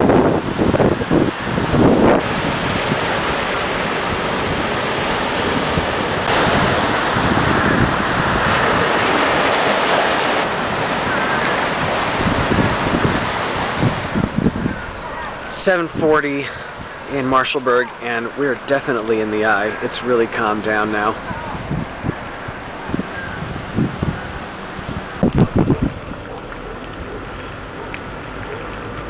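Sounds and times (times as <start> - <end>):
waves breaking on shore: 0.0 - 29.0
wind buffeting microphone: 0.0 - 29.0.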